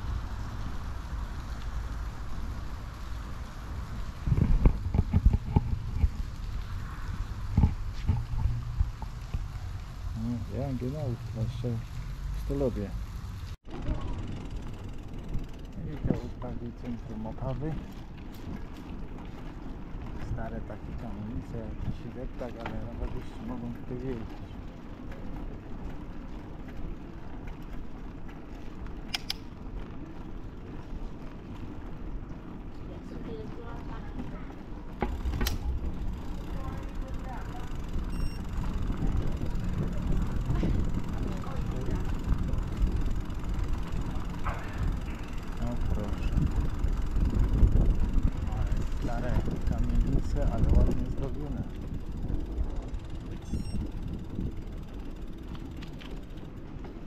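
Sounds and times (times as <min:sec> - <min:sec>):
bicycle rolling over cobblestones: 0:00.0 - 0:57.0
sharp clicks: 0:29.0 - 0:29.5.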